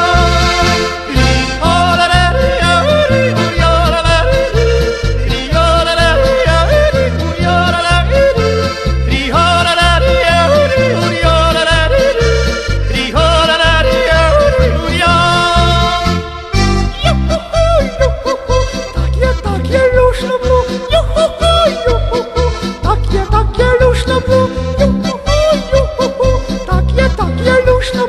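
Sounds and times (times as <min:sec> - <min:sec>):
accordion melody: 0:00.0 - 0:28.0
folk ensemble music: 0:00.0 - 0:28.0
oom-pah double bass: 0:00.0 - 0:28.0.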